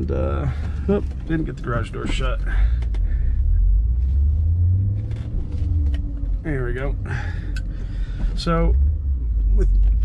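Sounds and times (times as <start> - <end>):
car engine rumbling: 0.0 - 10.0.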